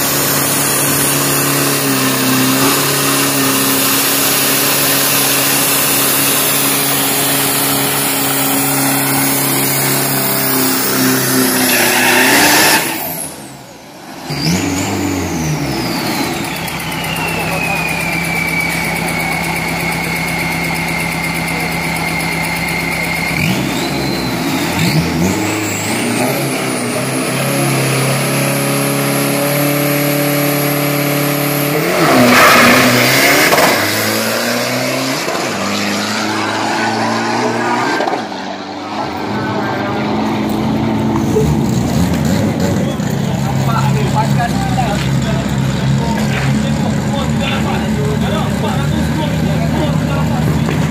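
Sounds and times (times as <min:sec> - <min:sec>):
diesel engine revving: 0:00.0 - 0:50.9
turbocharger whine: 0:00.0 - 0:50.9.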